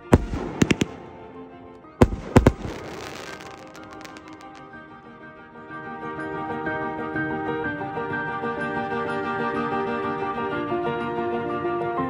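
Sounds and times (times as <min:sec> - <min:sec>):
fireworks bangs: 0:00.0 - 0:01.4, 0:02.0 - 0:04.8
fireworks crackling pops: 0:00.0 - 0:01.4, 0:02.0 - 0:04.8
background music: 0:00.0 - 0:12.0.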